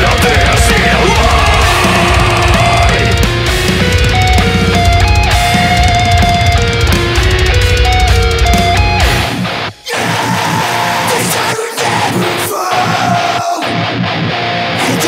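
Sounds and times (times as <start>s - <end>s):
electric guitar melodic line: 0.0s - 9.8s, 13.6s - 15.0s
heavy metal band playing: 0.0s - 15.0s.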